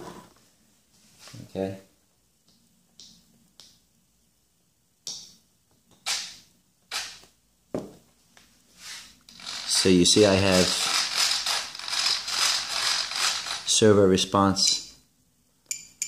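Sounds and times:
sharp clicks and rasps: 9.3s - 13.8s.

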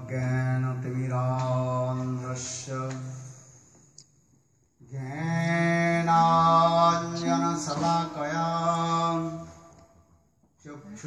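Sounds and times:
man chanting into a microphone: 0.0s - 3.4s, 4.9s - 9.7s.

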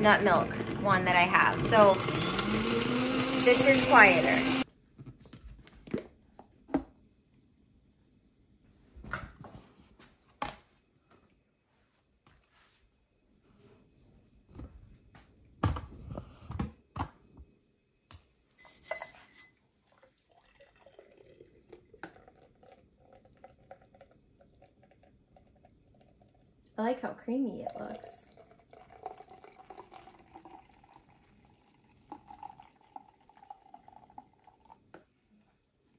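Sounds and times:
liquid trickling through strainer: 19.8s - 26.6s, 27.8s - 34.9s.

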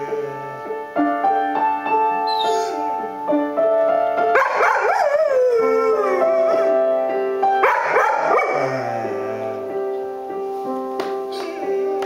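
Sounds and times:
piano notes: 0.0s - 12.0s
dog howling: 4.4s - 6.9s, 7.6s - 9.6s.

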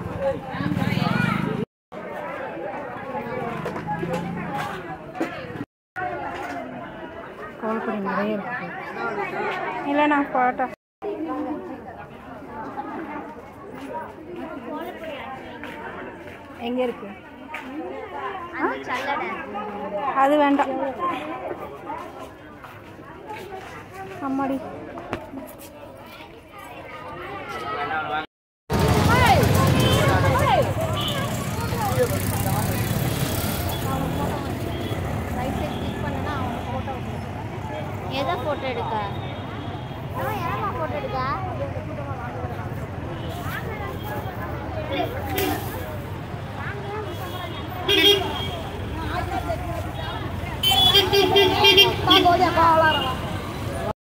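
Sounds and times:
crowd chatter: 0.0s - 54.0s
voices talking: 0.0s - 54.0s
low rumble of road traffic: 28.7s - 53.9s.

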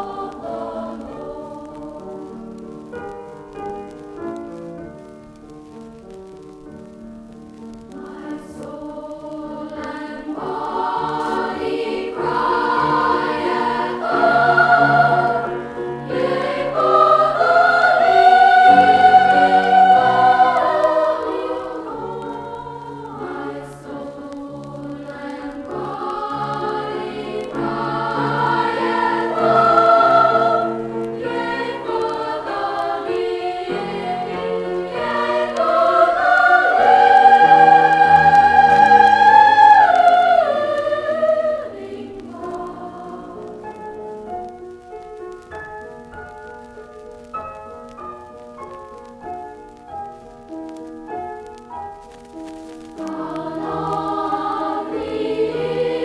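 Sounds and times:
choir singing: 0.0s - 2.8s, 7.8s - 44.0s, 52.9s - 56.0s.

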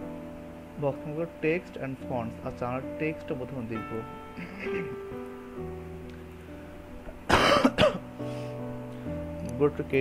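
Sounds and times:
soft background music: 0.0s - 10.0s
person coughing: 7.3s - 8.0s.

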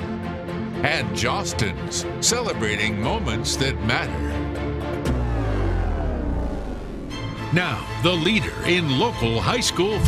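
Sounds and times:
tones sweeping downward: 5.0s - 7.6s
deep rumble: 5.0s - 8.0s.

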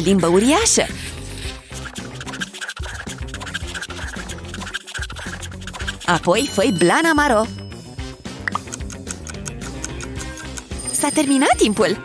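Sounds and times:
marker scratching on paper: 0.0s - 6.8s
background music: 0.0s - 12.0s.

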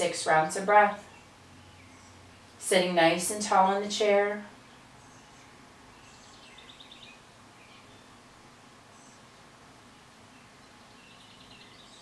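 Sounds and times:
faint bird chirps: 1.0s - 2.6s, 4.6s - 8.2s, 8.9s - 12.0s.

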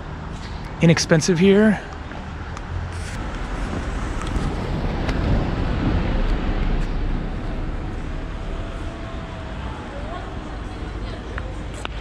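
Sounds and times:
vehicle passing by: 2.1s - 11.9s.

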